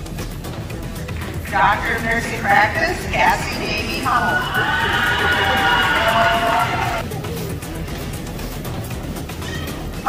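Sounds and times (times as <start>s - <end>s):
music over loudspeakers: 0.0s - 10.0s
crowd cheering: 1.4s - 7.0s.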